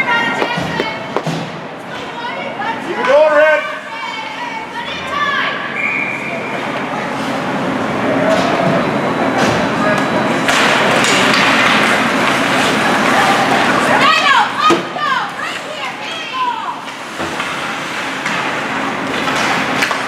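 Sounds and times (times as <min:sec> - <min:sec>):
indistinct voices in an arena: 0:00.0 - 0:20.0
sticks and puck clacking: 0:18.2 - 0:20.0.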